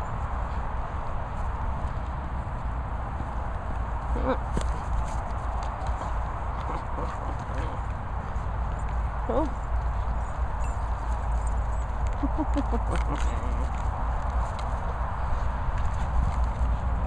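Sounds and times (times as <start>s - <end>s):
wind on microphone: 0.0s - 17.0s.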